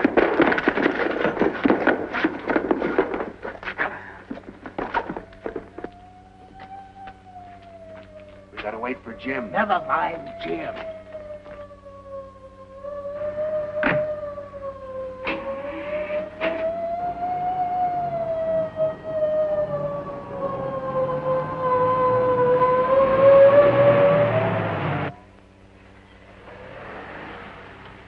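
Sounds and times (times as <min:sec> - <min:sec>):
sharp cracks: 0:00.0 - 0:08.8, 0:13.7 - 0:14.4, 0:15.2 - 0:15.7
police siren wailing: 0:00.0 - 0:25.2
truck engine: 0:00.0 - 0:28.0.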